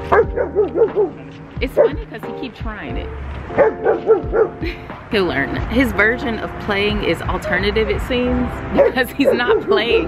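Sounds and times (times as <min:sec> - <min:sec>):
dog barking: 0:00.1 - 0:02.1, 0:03.5 - 0:04.6, 0:08.7 - 0:10.0.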